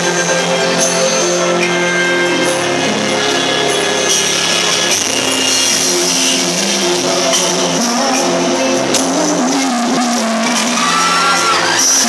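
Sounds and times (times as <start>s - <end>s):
backing track: 0.0s - 12.0s
crowd noise: 0.0s - 12.0s
man singing pop ballad: 0.0s - 12.0s.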